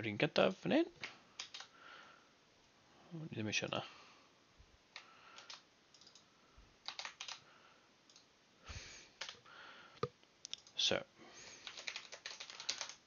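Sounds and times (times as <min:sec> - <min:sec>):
computer keyboard typing: 0:01.4 - 0:01.7, 0:05.0 - 0:07.5, 0:08.1 - 0:08.3, 0:09.2 - 0:09.4, 0:11.6 - 0:13.0.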